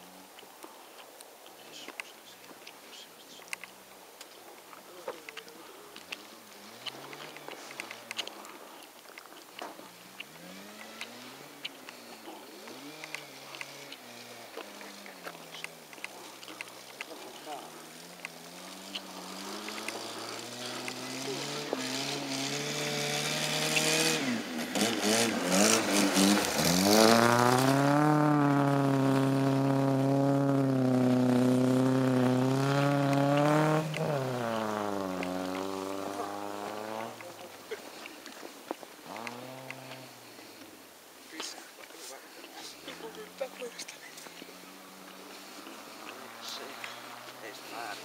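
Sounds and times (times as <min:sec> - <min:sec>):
car engine accelerating: 0:04.8 - 0:08.8, 0:09.5 - 0:40.8, 0:41.4 - 0:48.0
rush of snow and tyres: 0:05.6 - 0:48.0.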